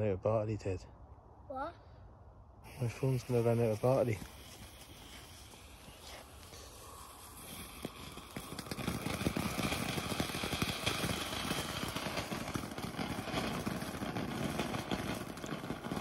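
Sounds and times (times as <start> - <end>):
firework fountain hissing and crackling: 2.6 - 16.0.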